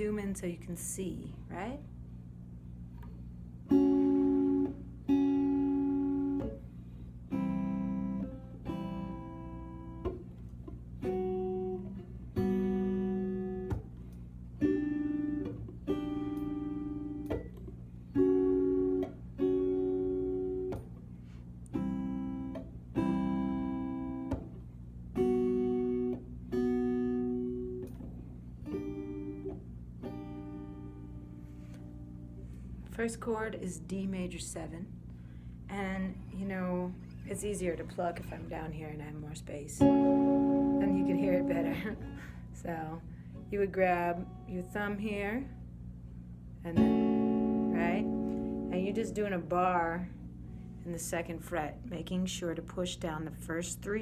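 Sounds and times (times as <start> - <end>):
steady low hum: 0.0 - 54.0
electric guitar chords ringing: 3.1 - 38.4, 39.0 - 51.9.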